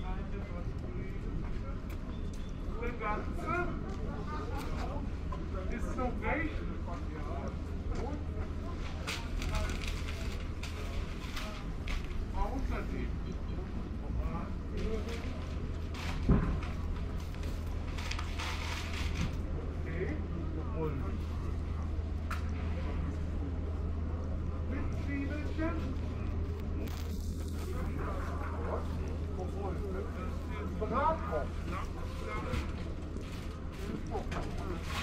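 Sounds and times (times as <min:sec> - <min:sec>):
steady low hum: 0:00.0 - 0:35.0
voices talking: 0:00.0 - 0:35.0
rustling crinkling noise: 0:06.9 - 0:13.1, 0:14.7 - 0:20.2, 0:24.0 - 0:35.0.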